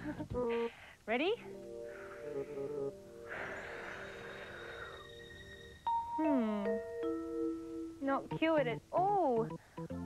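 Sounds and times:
soft background music: 0.0s - 10.0s
woman blowing through cupped hands: 1.7s - 6.6s.

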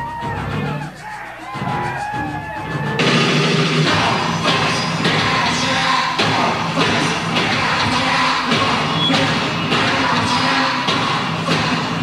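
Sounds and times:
heavy steady beat: 0.0s - 12.0s
person singing into microphone: 3.9s - 12.0s.

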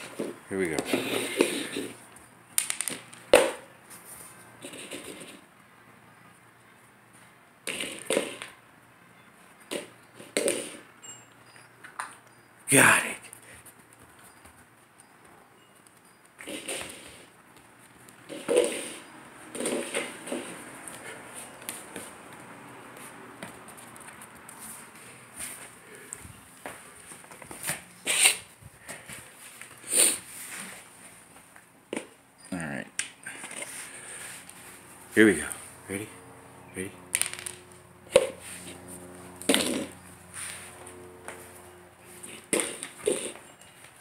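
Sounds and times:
puppy moving on hardwood floor: 13.4s - 27.9s.

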